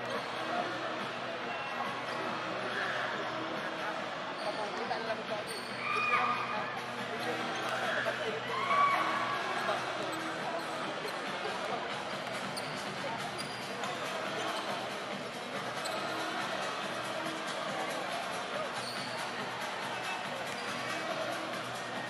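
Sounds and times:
crowd chatter: 0.0s - 22.0s
high-pitched shoe squeals: 5.4s - 6.5s, 15.8s - 16.4s, 18.8s - 19.3s.

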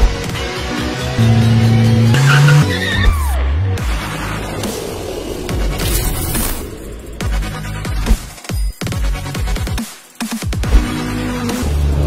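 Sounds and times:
background music: 0.0s - 12.0s
race car engine: 0.2s - 8.0s.

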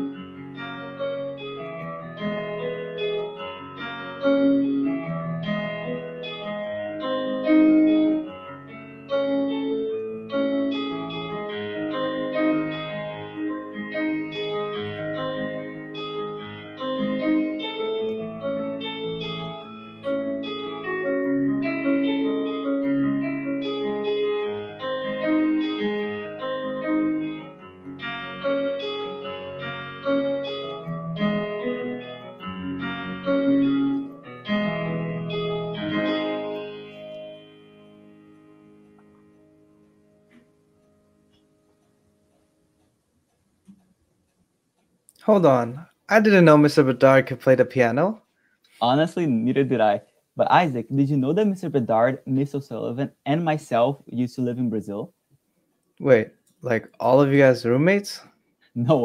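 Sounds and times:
keyboard piano piece: 0.0s - 42.6s.

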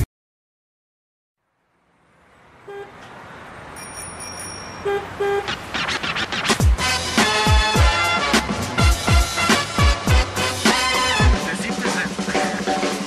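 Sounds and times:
street traffic noise: 1.4s - 13.0s
car horn toots: 2.6s - 3.0s, 4.0s - 5.7s.

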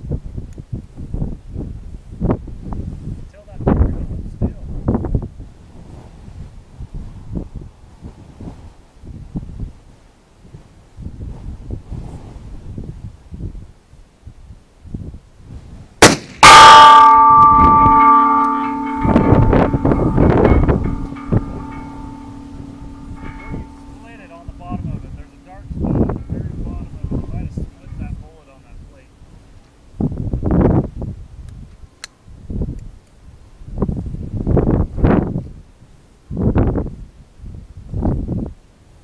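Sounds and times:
pistol shot: 16.0s - 16.8s
bullet ringing steel plate: 16.0s - 25.7s
rattling: 16.8s - 25.6s.

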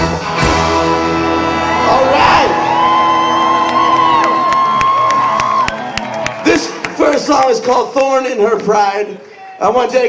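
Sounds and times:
live band with horn section: 0.0s - 6.7s
crowd cheering and whooping: 1.2s - 7.4s.

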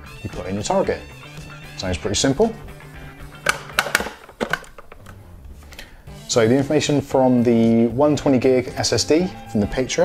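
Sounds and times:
drive clicking into dock slot: 3.4s - 5.2s.

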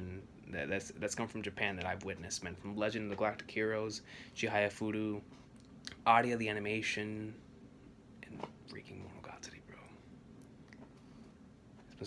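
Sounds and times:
man breathing faintly: 4.0s - 4.4s.

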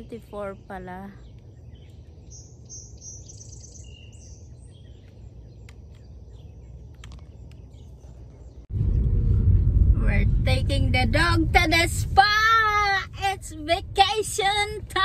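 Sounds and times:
birds chirping: 0.0s - 8.7s
low steady hum: 0.0s - 15.0s
car cabin rumble: 8.7s - 15.0s.

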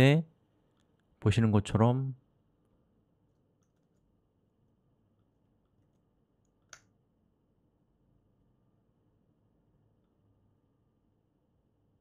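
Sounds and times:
person speaking: 1.2s - 2.2s.

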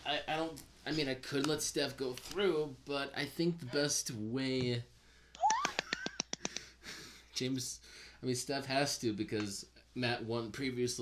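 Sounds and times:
woman squealing with laughter: 5.4s - 6.4s.

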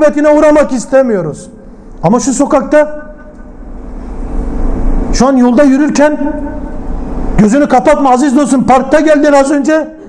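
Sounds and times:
man speaking: 0.0s - 3.4s, 5.1s - 6.8s, 7.4s - 10.0s
faint steady hum: 0.0s - 10.0s.

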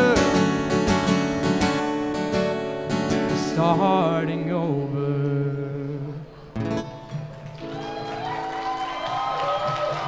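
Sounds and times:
acoustic guitar strumming: 0.0s - 8.5s.

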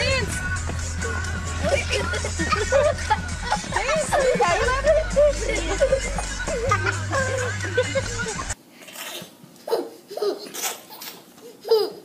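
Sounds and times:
toddler squealing and giggling: 9.7s - 12.0s.

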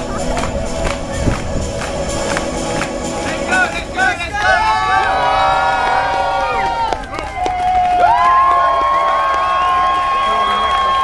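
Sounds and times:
crowd cheering: 2.3s - 11.0s.

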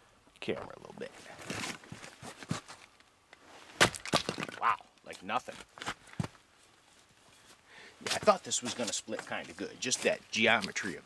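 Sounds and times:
axe splitting wood: 3.8s - 4.6s.

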